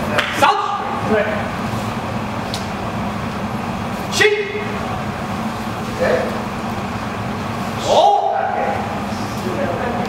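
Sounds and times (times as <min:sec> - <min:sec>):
steady low hum: 0:00.0 - 0:10.0
man calling out: 0:07.8 - 0:08.9.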